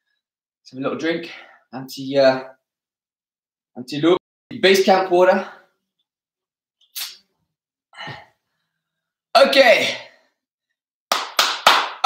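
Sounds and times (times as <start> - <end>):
hand claps: 11.1 - 12.0.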